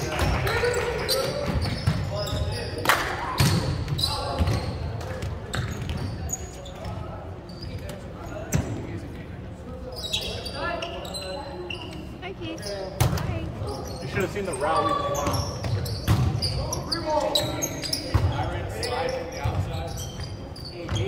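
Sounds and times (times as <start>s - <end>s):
volleyball smacks in a gym: 0.1s - 6.1s, 13.0s - 13.3s.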